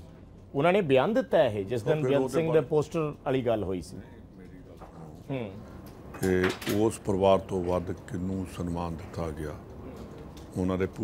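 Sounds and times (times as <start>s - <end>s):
man speaking: 0.6s - 5.6s.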